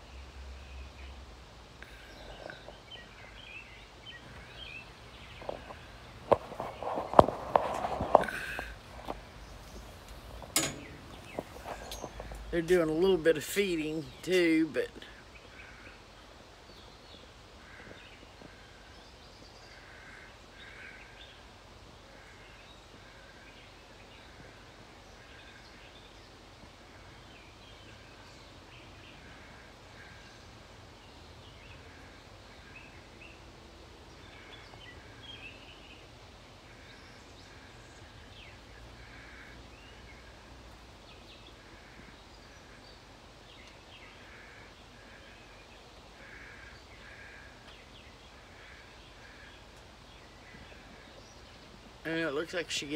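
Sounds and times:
birds chirping: 0.0s - 52.9s
steady low background noise: 0.0s - 52.9s.

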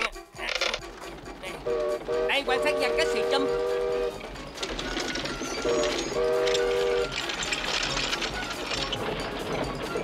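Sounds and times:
wooden machine clattering: 4.6s - 10.0s.

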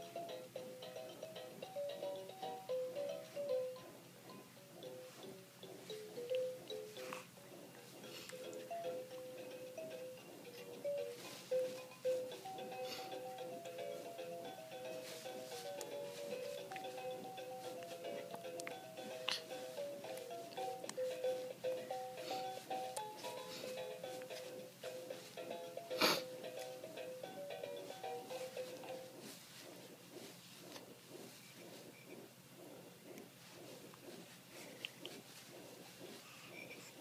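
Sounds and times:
electronic toy music: 0.0s - 4.0s, 8.4s - 29.1s.

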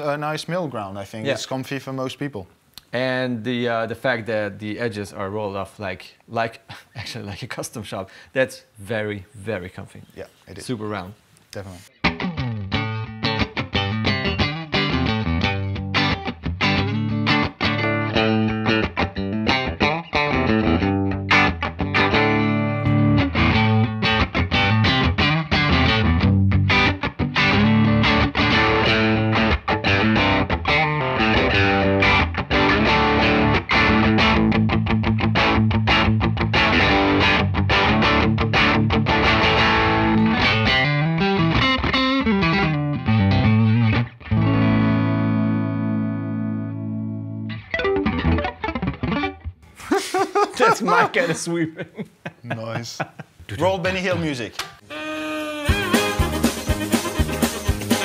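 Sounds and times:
overdriven electric guitar: 11.9s - 49.6s, 55.6s - 58.0s
second electric guitar: 11.9s - 49.6s, 54.6s - 58.0s.

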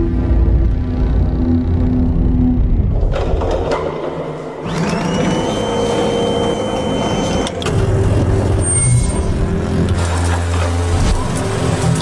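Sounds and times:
continuous low rumble: 0.0s - 4.6s
mechanical whine: 0.0s - 12.0s.

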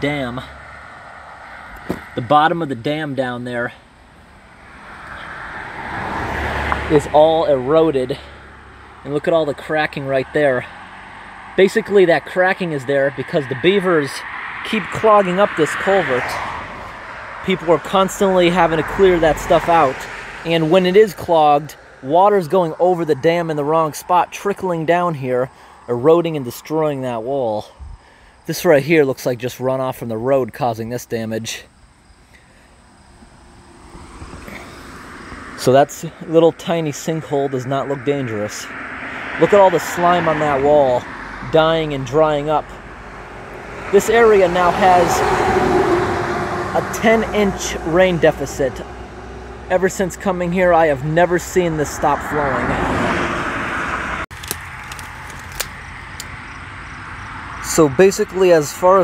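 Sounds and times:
car approaching: 0.0s - 59.0s.

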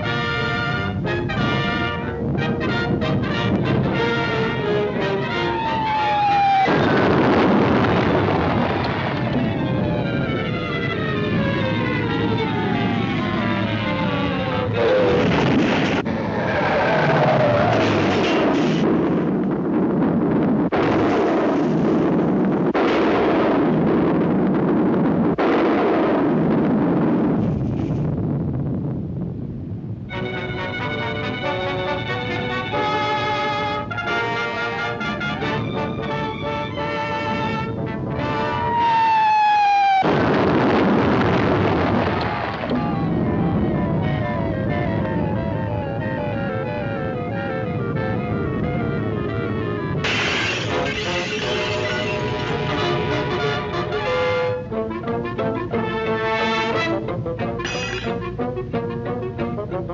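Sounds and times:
dramatic orchestral music: 0.0s - 6.0s, 30.1s - 38.7s, 43.9s - 59.9s
loud crashing sound effects: 6.7s - 9.3s, 14.9s - 16.5s, 17.2s - 19.4s, 20.7s - 28.4s, 50.0s - 53.7s.

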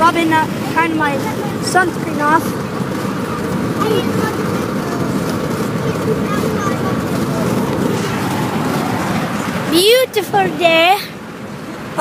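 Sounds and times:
road and wind noise in vehicle: 0.0s - 12.0s.

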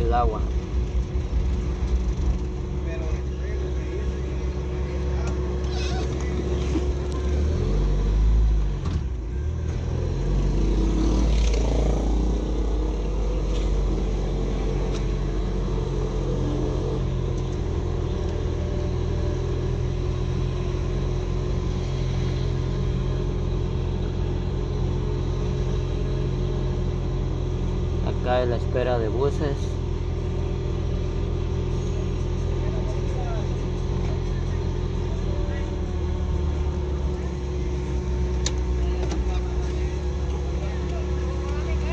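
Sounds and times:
car engine and road noise: 0.0s - 41.9s.

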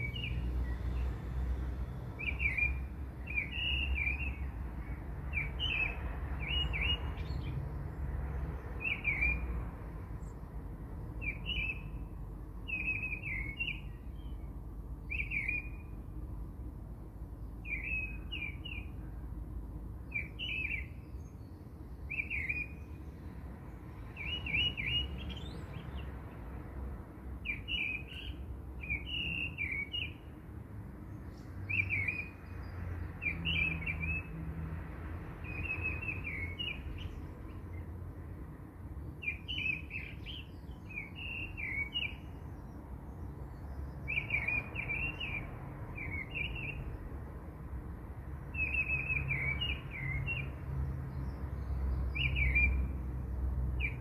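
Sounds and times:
bird chirping: 0.0s - 1.2s, 2.2s - 9.5s, 11.2s - 16.0s, 17.4s - 19.1s, 20.0s - 23.3s, 23.9s - 26.3s, 27.4s - 30.4s, 31.1s - 34.3s, 35.4s - 37.9s, 39.0s - 47.0s, 48.5s - 52.9s, 53.8s - 54.0s.

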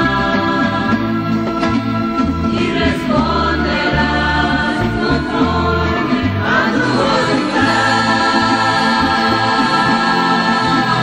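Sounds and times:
group of voices singing: 0.0s - 11.0s
instrumental accompaniment: 0.0s - 11.0s.

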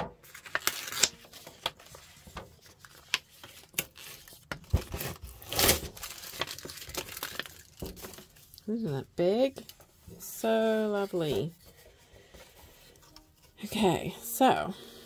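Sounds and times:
paper crinkling and rubbing: 0.2s - 13.9s.

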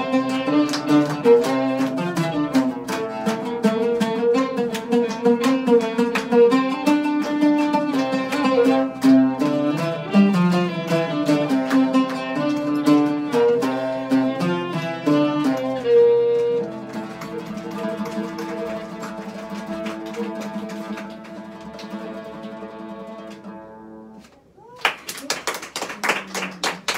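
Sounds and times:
hand clapping: 0.0s - 23.6s, 24.2s - 26.9s
violin playing: 0.0s - 23.6s
oud playing plucked notes: 0.0s - 24.3s.

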